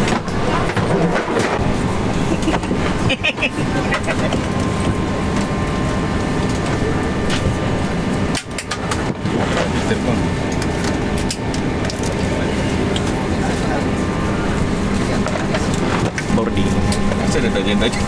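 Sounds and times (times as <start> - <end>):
airliner cabin hum: 0.0 - 18.0
passengers chatting: 0.0 - 18.0.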